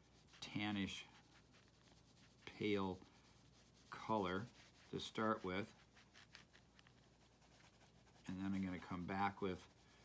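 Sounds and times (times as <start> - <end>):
oil pastel scratching on paper: 0.0 - 10.0.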